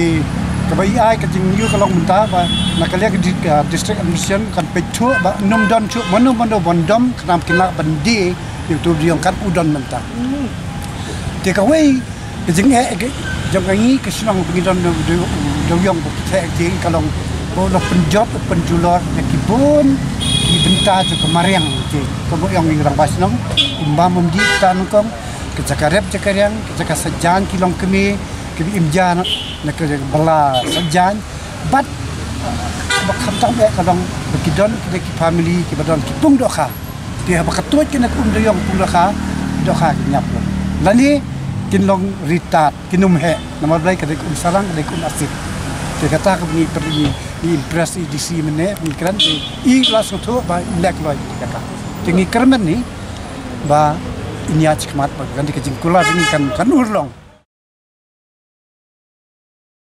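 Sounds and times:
man talking: 0.0s - 45.4s, 46.0s - 52.9s, 53.6s - 57.2s
street traffic: 0.0s - 57.5s
vehicle horn toot: 1.6s - 3.0s, 5.0s - 6.4s, 20.2s - 21.9s, 23.6s - 24.8s, 29.2s - 29.6s, 32.9s - 33.6s, 56.0s - 56.6s.

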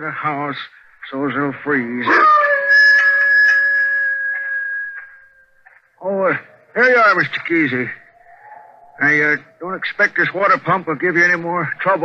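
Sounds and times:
hound dog howling: 2.0s - 5.0s, 6.6s - 9.9s.

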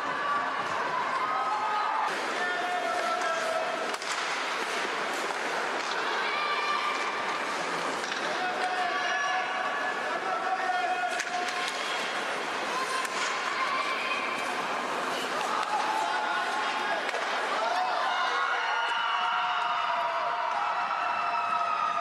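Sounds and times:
players shouting: 0.0s - 4.2s, 5.8s - 22.0s
skates scraping on ice: 2.0s - 18.1s.

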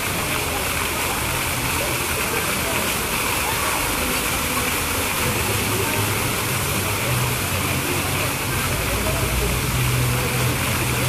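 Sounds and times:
fountain water splashing into pool: 0.0s - 11.0s.

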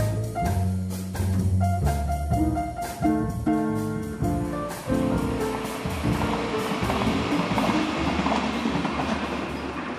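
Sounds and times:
jazz piano music: 0.0s - 9.8s
train rumbling on rails: 4.1s - 9.9s
train wheels clattering: 4.2s - 9.9s.

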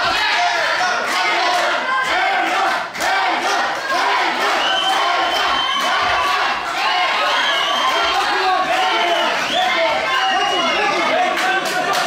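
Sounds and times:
crowd yelling and shouting: 0.0s - 12.0s.

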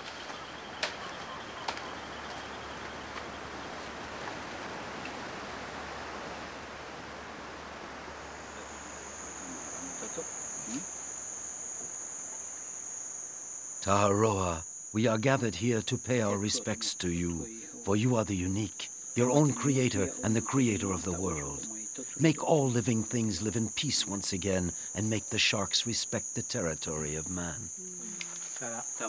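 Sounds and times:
crickets trilling: 0.0s - 29.0s
soft outdoor hiss: 0.0s - 29.0s.

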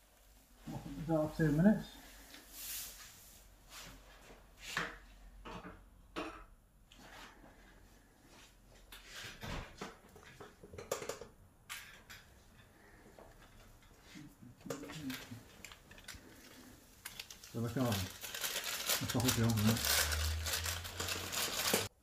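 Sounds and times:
plastic sheet crinkling: 14.7s - 22.0s.

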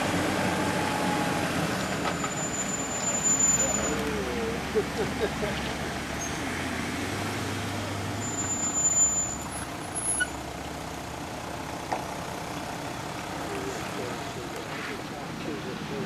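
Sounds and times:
engine running low and steady: 0.0s - 16.0s
thin high squeal: 1.8s - 4.0s, 8.2s - 9.5s.

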